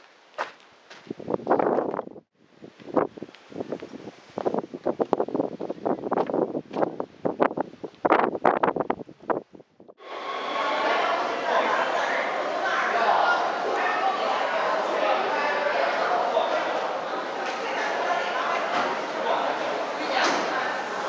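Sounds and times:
wind buffeting microphone: 1.0 - 10.0.

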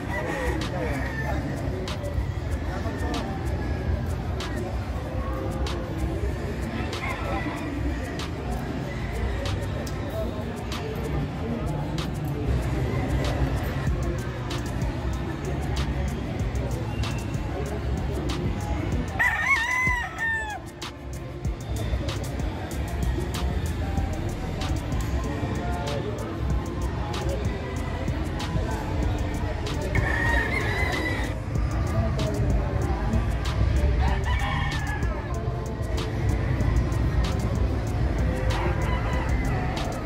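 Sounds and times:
low rumble of busy hall: 0.0 - 40.0
rooster crowing: 19.2 - 20.6, 30.0 - 31.4.

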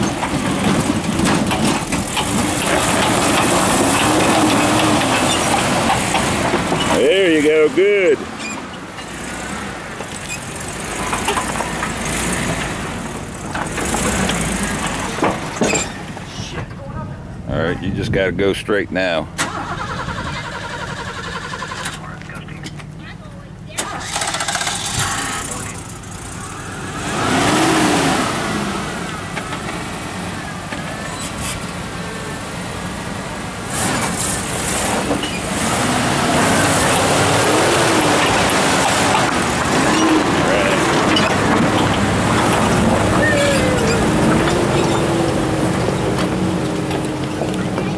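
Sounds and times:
truck engine revving under load: 0.0 - 16.3, 23.7 - 47.9.

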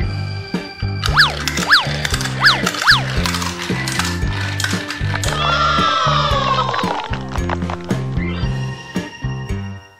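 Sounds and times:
background music: 0.0 - 9.9
toy cars clattering down ramps: 1.0 - 5.9.

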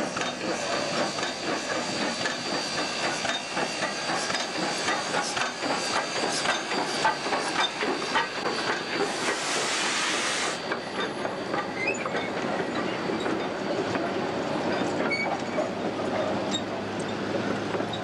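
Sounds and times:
steam hissing: 0.0 - 14.7
steam locomotive moving slowly: 0.0 - 18.0.

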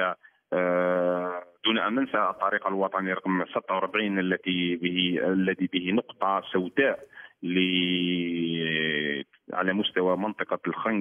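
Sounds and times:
man's voice over telephone: 0.0 - 11.0.

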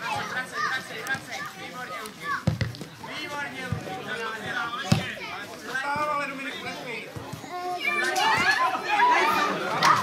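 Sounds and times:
ball being kicked: 2.4 - 3.0, 4.8 - 5.2
children shouting: 7.4 - 10.0.

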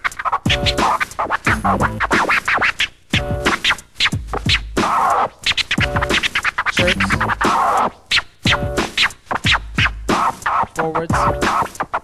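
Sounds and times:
turntable scratching: 0.0 - 12.0.

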